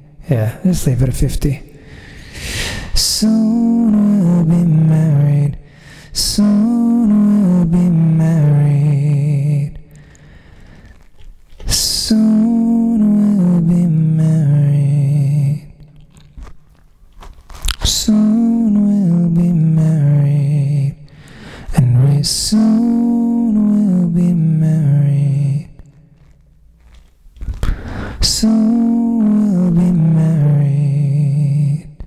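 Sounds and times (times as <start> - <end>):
quick breath: 1.8 - 3.0, 5.6 - 6.1, 9.9 - 11.1, 21.1 - 21.7, 27.5 - 28.2
man singing with vocal harmony: 2.5 - 10.2, 11.6 - 15.8, 17.8 - 25.9, 28.2 - 32.0.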